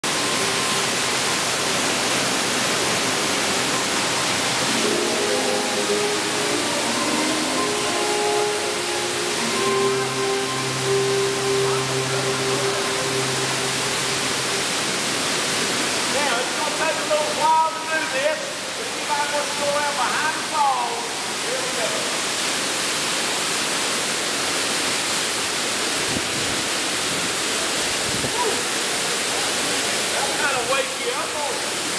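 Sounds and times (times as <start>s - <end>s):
waterfall rushing into cave: 0.0s - 31.9s
sustained music tones: 0.1s - 16.0s.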